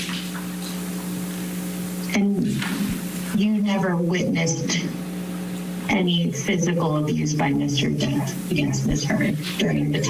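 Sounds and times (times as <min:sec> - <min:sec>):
steady hiss: 0:00.0 - 0:03.4
electrical hum: 0:00.0 - 0:10.0.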